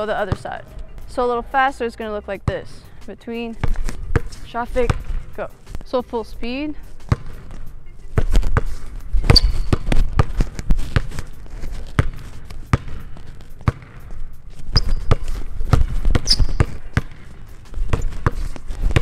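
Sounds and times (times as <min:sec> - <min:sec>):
basketball bouncing on hardwood: 0:03.6 - 0:05.1, 0:07.1 - 0:07.4, 0:08.2 - 0:08.7, 0:09.3 - 0:11.1, 0:11.9 - 0:12.9, 0:13.6 - 0:13.9, 0:14.7 - 0:17.2, 0:17.8 - 0:19.0
sneaker squeaks: 0:07.1 - 0:12.2, 0:14.6 - 0:19.0.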